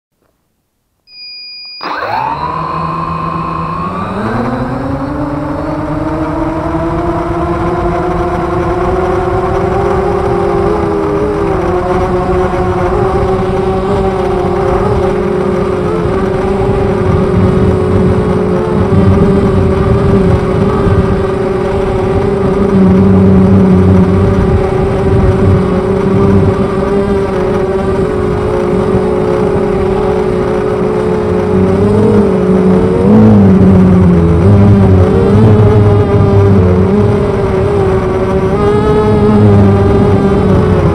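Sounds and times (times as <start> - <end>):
short electronic beep: 1.1 - 4.7
drone motors whining: 1.1 - 40.9.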